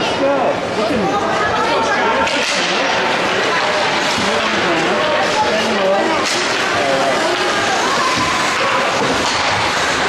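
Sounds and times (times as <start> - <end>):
voices chattering: 0.0 - 10.0
hockey sticks cracking on puck: 2.2 - 10.0.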